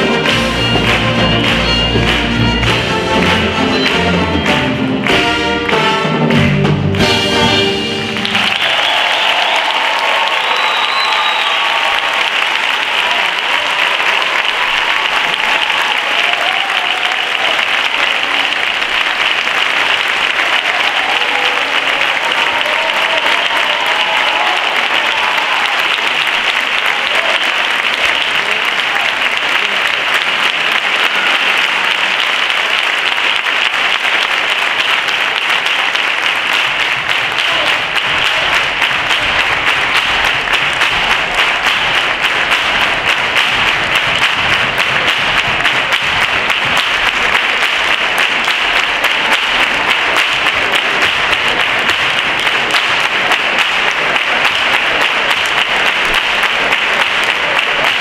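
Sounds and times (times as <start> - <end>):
audience applauding: 0.0 - 58.0.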